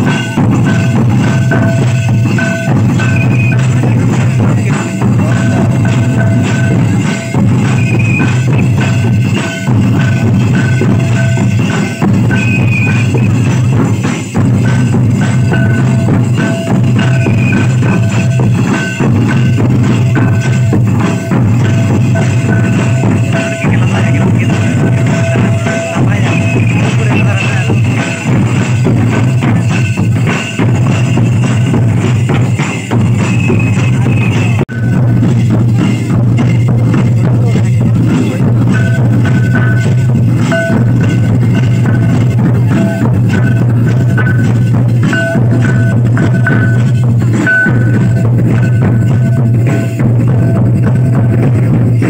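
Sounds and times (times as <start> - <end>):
kettle drums beating: 0.0 - 52.0.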